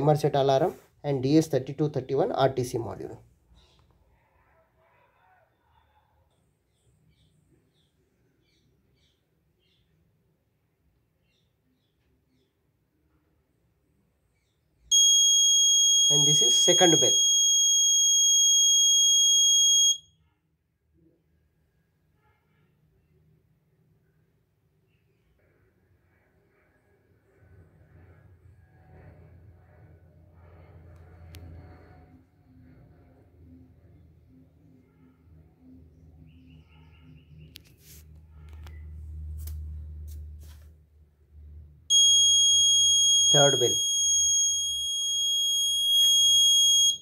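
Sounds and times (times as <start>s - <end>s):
electronic alarm buzzer tone: 14.9s - 20.1s, 41.9s - 47.0s.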